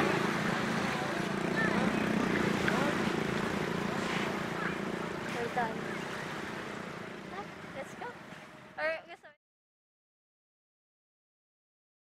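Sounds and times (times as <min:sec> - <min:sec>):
even background noise: 0:00.0 - 0:09.3
faint voices: 0:00.1 - 0:08.2.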